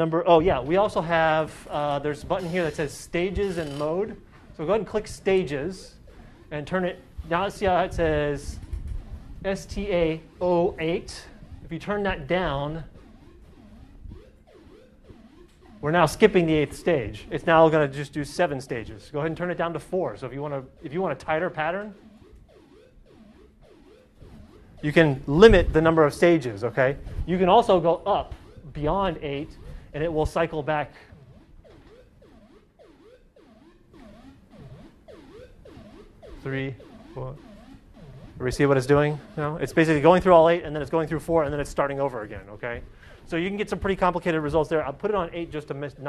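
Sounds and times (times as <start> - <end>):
synthesizer sequenced gliding notes: 0.0 - 46.0.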